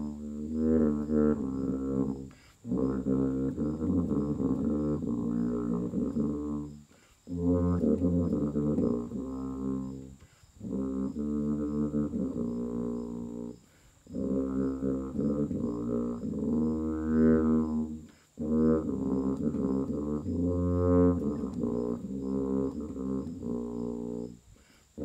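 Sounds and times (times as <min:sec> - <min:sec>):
tuba playing slow melody: 0:00.0 - 0:25.0
short breaths: 0:02.3 - 0:02.7, 0:06.8 - 0:07.3, 0:10.2 - 0:10.6, 0:13.6 - 0:14.1, 0:18.0 - 0:18.4, 0:24.5 - 0:25.0.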